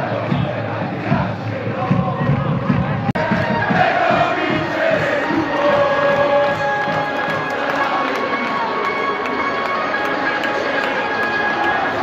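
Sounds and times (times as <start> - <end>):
crowd singing a chant: 0.0 - 12.0.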